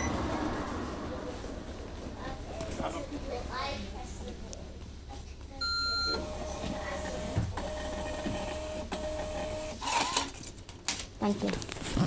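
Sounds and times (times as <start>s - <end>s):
bus engine idling hum: 0.0s - 4.8s
ticket printer whirring: 6.2s - 10.4s.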